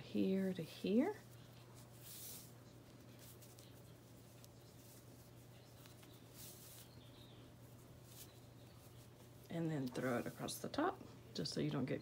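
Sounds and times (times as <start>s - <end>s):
cord brushing through knot: 1.1s - 10.7s.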